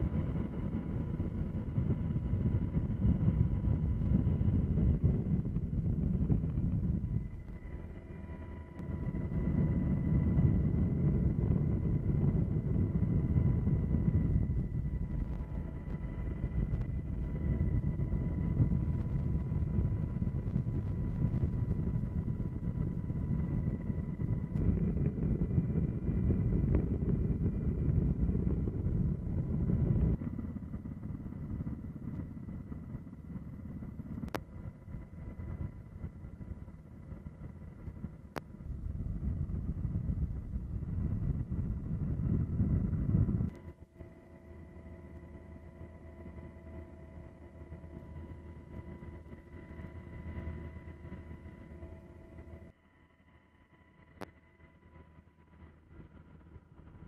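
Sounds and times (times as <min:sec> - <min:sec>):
wind buffeting microphone: 0:00.0 - 0:43.8
low rumble: 0:00.0 - 0:44.0
faint steady whine: 0:00.0 - 0:57.0.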